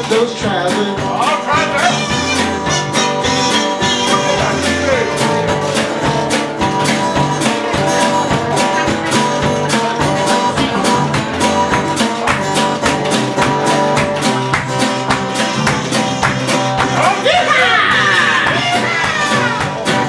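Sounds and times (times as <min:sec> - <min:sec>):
acoustic band playing: 0:00.0 - 0:20.0.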